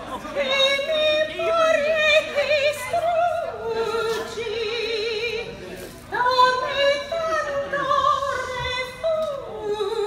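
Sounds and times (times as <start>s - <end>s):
woman singing operatic soprano: 0.3s - 5.5s, 6.1s - 10.0s.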